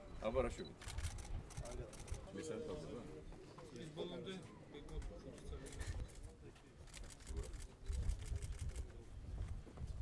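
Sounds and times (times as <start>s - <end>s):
people talking quietly: 0.0s - 10.0s.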